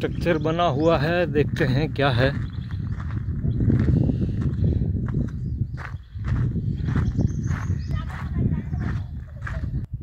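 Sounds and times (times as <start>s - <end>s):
footsteps on gritty dirt path: 0.2s - 10.0s.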